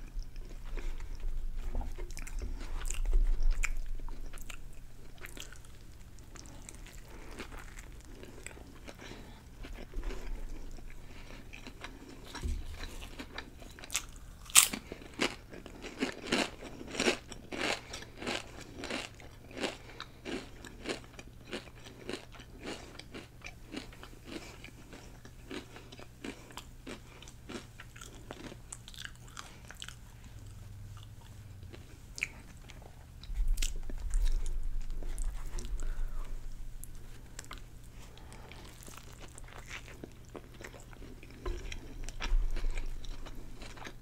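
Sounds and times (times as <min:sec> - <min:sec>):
potato chips crunched and chewed: 0:01.9 - 0:30.0.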